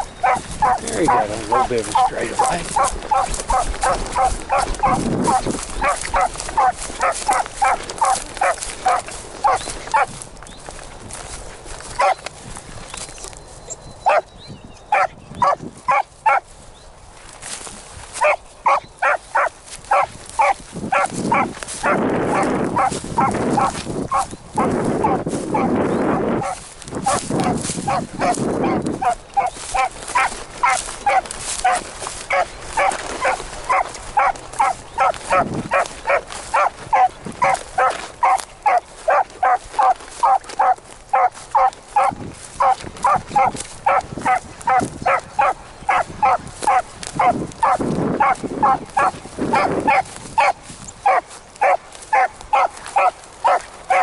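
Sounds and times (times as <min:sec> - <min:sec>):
dog barking rapidly: 0:00.0 - 0:10.1, 0:12.0 - 0:12.2, 0:14.0 - 0:14.3, 0:14.9 - 0:16.4, 0:18.2 - 0:54.0
wind buffeting microphone: 0:00.0 - 0:54.0.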